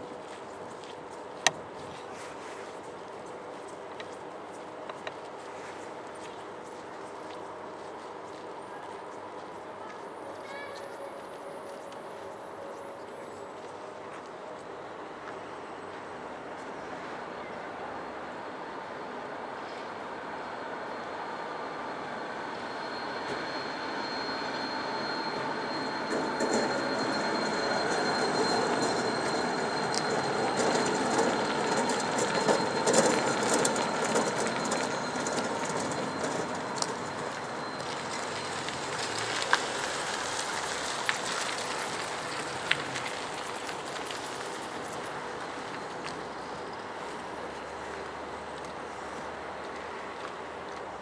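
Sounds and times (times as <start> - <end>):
tram rumbling past on rails: 0.0 - 51.0
high wheel squeal: 20.6 - 48.4.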